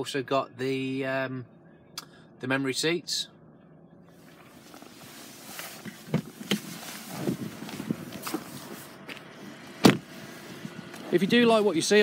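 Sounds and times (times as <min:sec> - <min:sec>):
rustling: 0:04.2 - 0:09.3
car door shutting thud: 0:06.0 - 0:08.6, 0:09.7 - 0:10.2.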